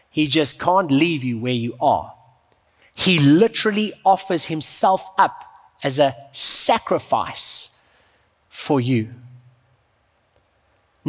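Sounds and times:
man's voice: 0:00.1 - 0:02.2, 0:03.0 - 0:07.8, 0:08.5 - 0:09.4.

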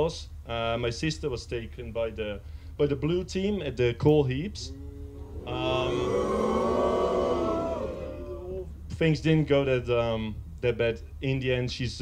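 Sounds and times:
audience going aww: 0:05.0 - 0:08.7.

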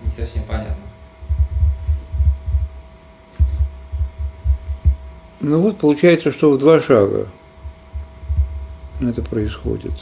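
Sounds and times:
faint steady hum tone: 0:00.0 - 0:10.0
low thumps and rumbling: 0:01.2 - 0:02.8, 0:03.4 - 0:05.1, 0:07.6 - 0:08.8.

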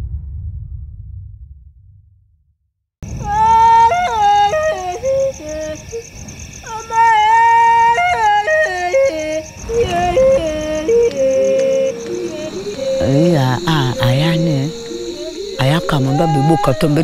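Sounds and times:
insect chirring: 0:03.0 - 0:17.0
person yodeling: 0:03.2 - 0:06.0, 0:06.7 - 0:17.0.

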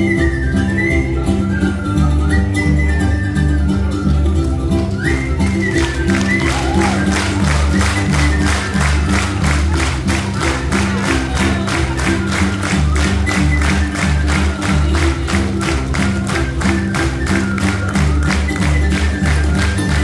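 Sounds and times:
folk dance music: 0:00.0 - 0:20.0.

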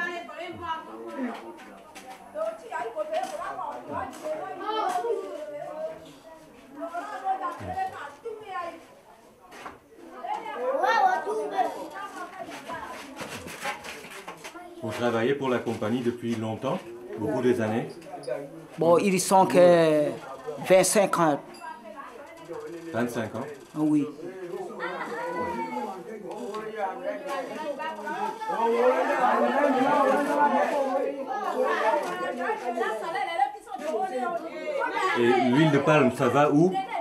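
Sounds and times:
overlapping chatter: 0:00.0 - 0:37.0.

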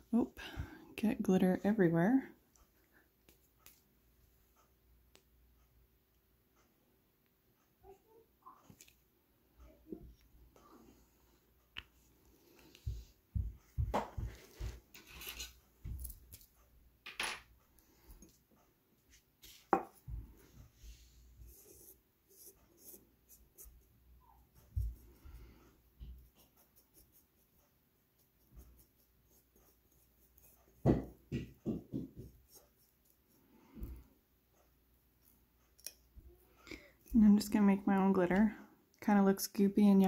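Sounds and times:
handling rustles and taps: 0:03.2 - 0:03.9, 0:12.6 - 0:18.4
brush mixing gel in plastic dish: 0:19.0 - 0:34.1, 0:37.0 - 0:40.0.

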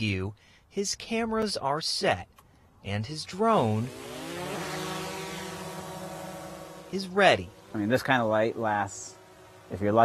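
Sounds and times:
drone propellers whining and buzzing: 0:03.2 - 0:10.0.

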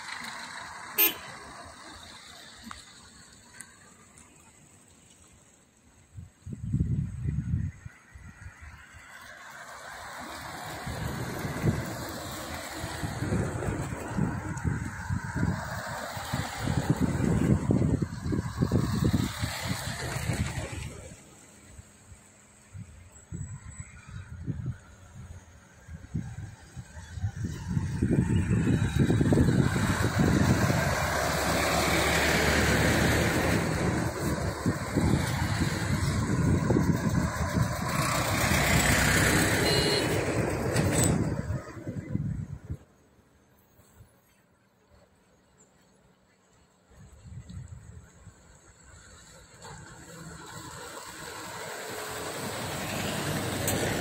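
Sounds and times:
bus passing with loud engine: 0:00.0 - 0:54.0
cars passing close by: 0:00.0 - 0:54.0.

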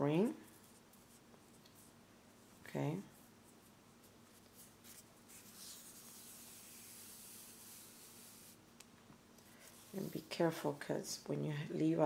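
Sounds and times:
thread rubbing through stitches: 0:03.1 - 0:08.6.

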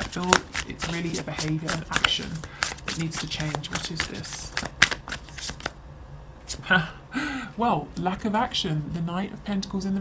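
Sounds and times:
cards being shuffled: 0:00.0 - 0:05.8.

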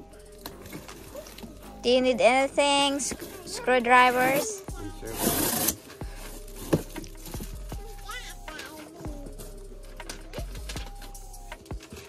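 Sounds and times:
cardboard tearing: 0:05.1 - 0:05.9.

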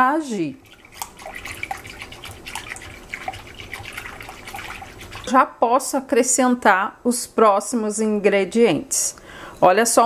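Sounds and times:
liquid sloshing in bowl: 0:00.2 - 0:06.0
whisk ticking on glass bowl: 0:00.6 - 0:05.6.

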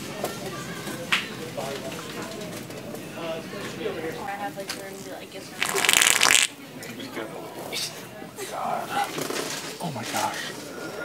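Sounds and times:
wet sputtering fart noise: 0:05.6 - 0:06.5.

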